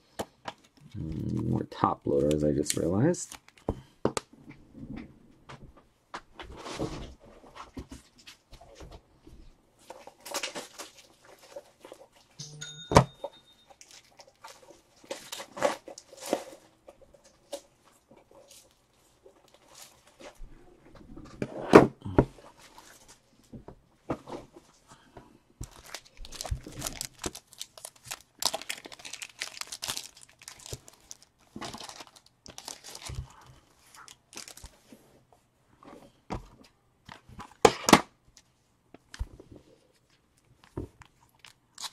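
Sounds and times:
plastic packs rummaged and set down: 0:25.6 - 0:34.9.

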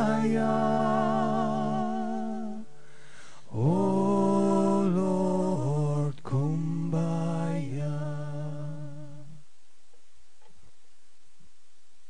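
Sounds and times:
a cappella singing without words: 0:00.0 - 0:09.6.

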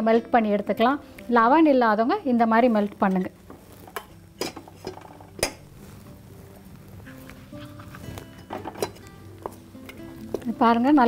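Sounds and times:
soft background music: 0:00.0 - 0:11.0
spoon stirring in steel bowl: 0:02.8 - 0:06.2, 0:07.0 - 0:10.8.

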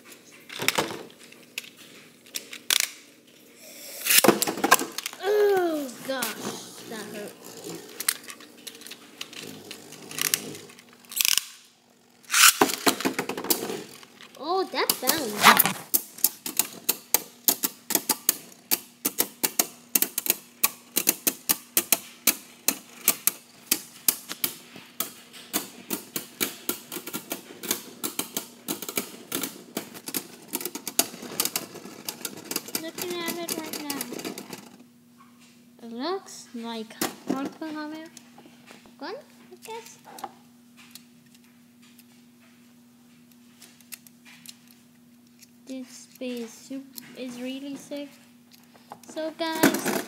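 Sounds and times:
plastic tops clattering: 0:48.9 - 0:50.0.

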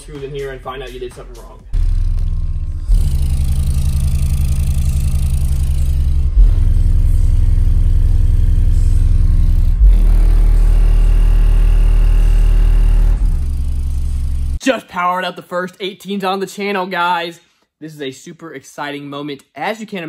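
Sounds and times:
sustained bass notes from subwoofers: 0:00.0 - 0:14.6.

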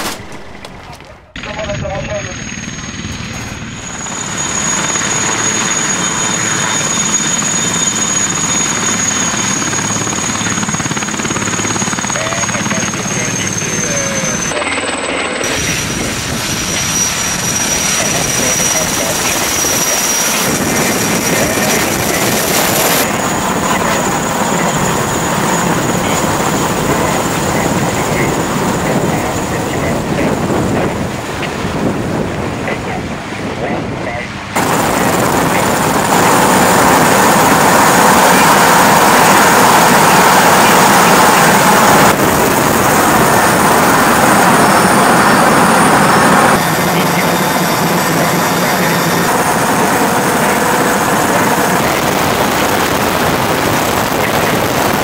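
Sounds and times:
helicopter rotor rush: 0:00.0 - 0:55.0
helicopter turbine whine: 0:00.0 - 0:55.0.

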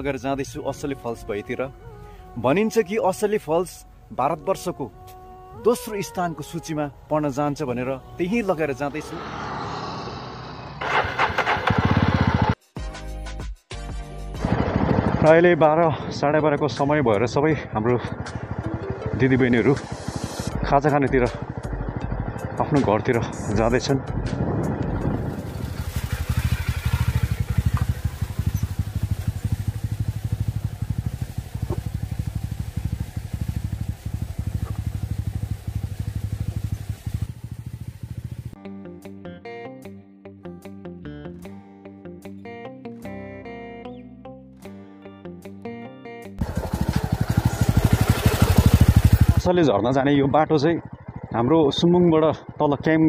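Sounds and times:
motorcycle engine running: 0:08.9 - 0:12.6, 0:14.4 - 0:38.6, 0:46.4 - 0:53.0
wind noise: 0:24.2 - 0:27.2.

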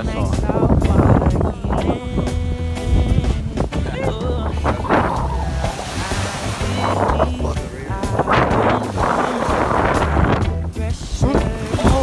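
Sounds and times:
small waves washing over reef: 0:04.5 - 0:12.0.

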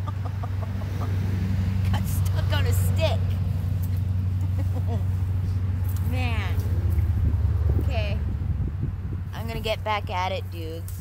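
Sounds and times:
low rumble: 0:03.2 - 0:09.6.

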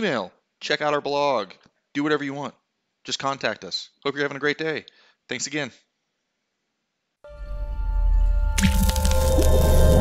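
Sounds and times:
music with low drone: 0:07.3 - 0:10.0
wet splashy hit: 0:08.6 - 0:10.0.

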